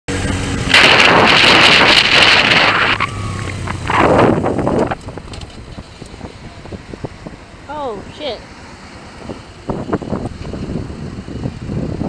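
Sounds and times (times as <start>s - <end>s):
motorcycle engine hum: 0.1s - 12.0s
wind buffeting microphone: 0.1s - 12.0s.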